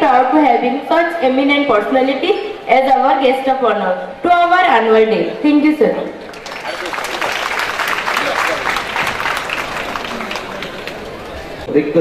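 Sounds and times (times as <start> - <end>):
audience applauding: 6.2 - 11.7.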